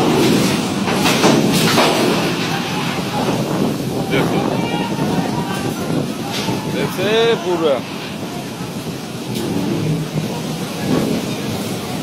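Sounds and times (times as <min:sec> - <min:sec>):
boat engine rumble: 0:00.0 - 0:12.0.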